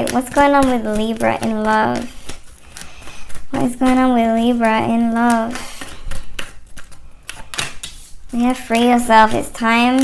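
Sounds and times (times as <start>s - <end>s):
cards clicking on a tabletop: 5.2s - 10.0s.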